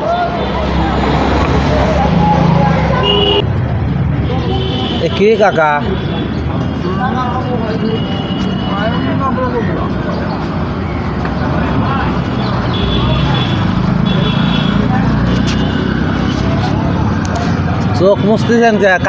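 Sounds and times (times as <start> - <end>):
traffic engines rumbling: 0.0 - 19.0
vehicle passing close: 0.2 - 4.3.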